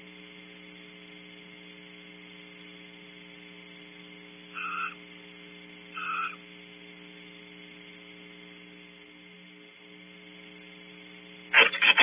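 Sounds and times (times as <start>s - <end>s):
steady electrical hum: 0.0s - 12.0s
barn owl calls: 4.5s - 5.0s, 5.9s - 6.4s.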